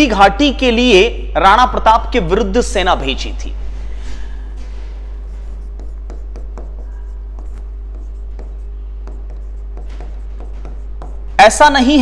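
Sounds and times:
steady low hum: 0.0s - 12.0s
writing strokes on board: 5.2s - 11.4s.

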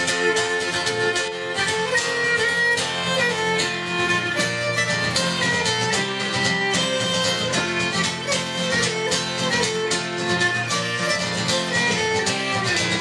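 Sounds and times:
fiddle melody: 0.0s - 13.0s
strummed guitar: 0.0s - 13.0s.

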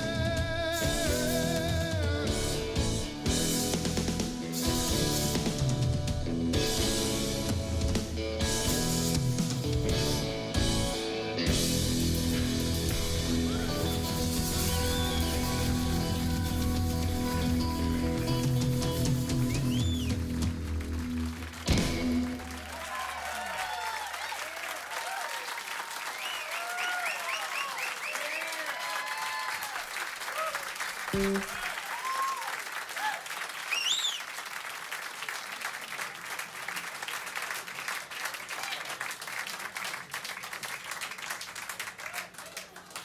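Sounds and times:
audience applauding and cheering: 12.8s - 43.0s
whistle from audience: 13.5s - 15.8s, 19.3s - 20.3s, 26.1s - 28.7s, 33.6s - 34.4s.

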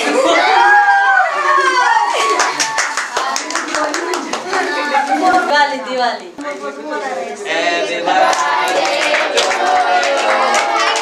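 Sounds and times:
excited children's voices: 0.0s - 5.9s, 6.9s - 11.0s
group clapping hands: 2.1s - 4.8s, 8.1s - 11.0s.

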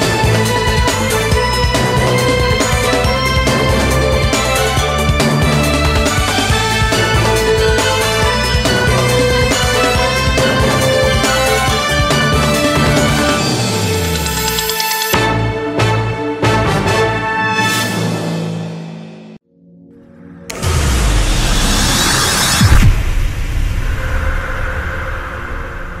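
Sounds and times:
theme music with sustained tones: 0.0s - 22.8s
low rumble: 20.5s - 26.0s
sharp accented hit: 20.5s - 26.0s.

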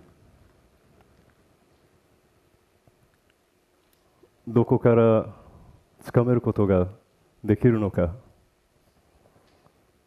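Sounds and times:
man speaking into a microphone: 4.5s - 8.3s.

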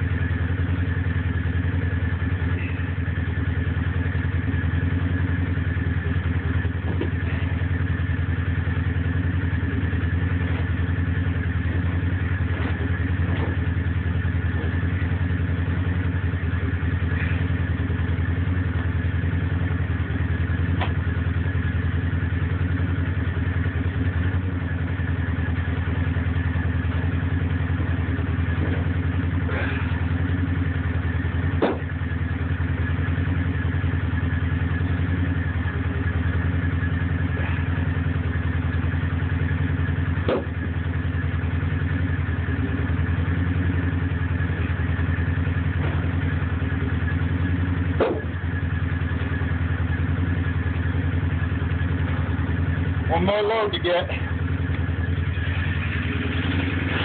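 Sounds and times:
small petrol engine idling: 0.0s - 57.0s
sharp knocks: 31.6s - 31.9s, 40.2s - 40.6s, 48.0s - 48.3s.

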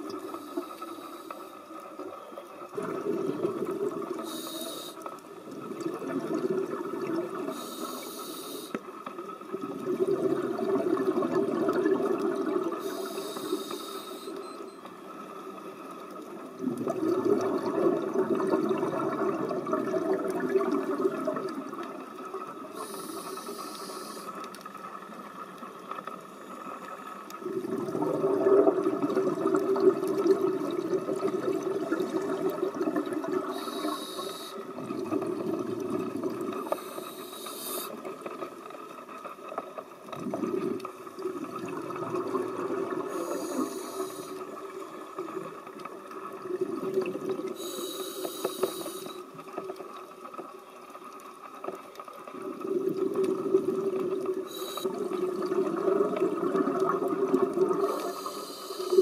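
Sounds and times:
regulator inhale hiss: 0.2s - 1.8s, 4.2s - 5.2s, 7.5s - 8.9s, 12.7s - 14.4s, 22.7s - 24.5s, 33.4s - 34.7s, 36.5s - 38.1s, 43.0s - 44.6s, 47.5s - 49.4s, 54.4s - 55.2s, 57.8s - 59.0s
bubbling exhale: 16.6s - 21.6s, 27.4s - 38.0s, 40.1s - 44.8s.

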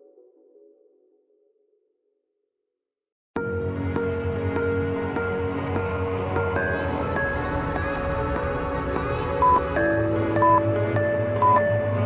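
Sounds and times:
interval timer beep: 11.4s - 11.7s.

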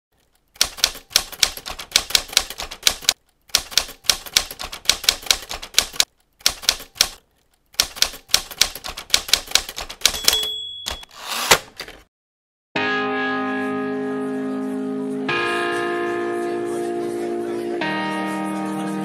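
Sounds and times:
typewriter keys clacking: 0.2s - 11.1s.

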